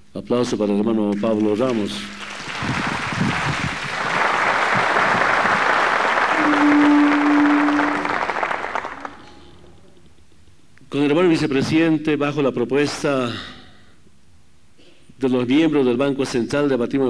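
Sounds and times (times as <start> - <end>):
audience applauding: 1.2 - 9.5
steady held tone: 6.3 - 9.8.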